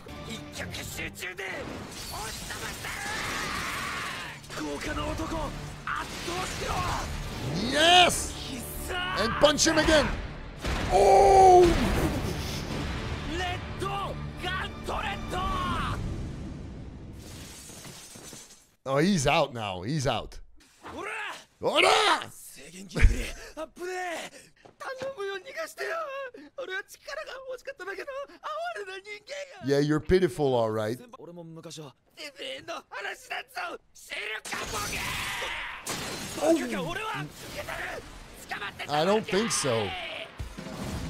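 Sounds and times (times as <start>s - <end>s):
music: 0.0s - 2.6s, 3.6s - 17.2s
crashing shattering impact: 1.6s - 3.8s, 5.1s - 7.8s, 35.9s - 38.8s
person shouting: 6.7s - 9.6s, 10.9s - 12.0s, 13.9s - 16.0s, 21.2s - 22.4s
shattering crashing sound effect: 17.0s - 18.6s, 35.9s - 38.4s, 40.4s - 41.0s.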